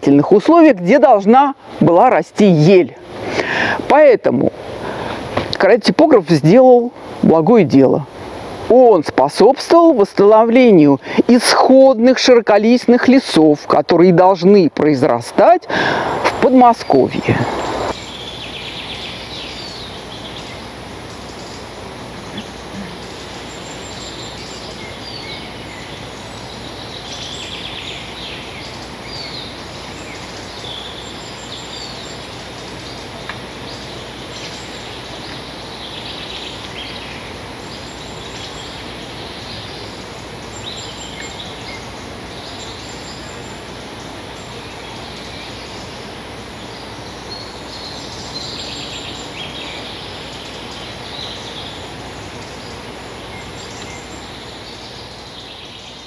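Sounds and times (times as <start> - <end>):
songbirds chirping: 0.0 - 56.0
steady background hiss: 0.0 - 56.0.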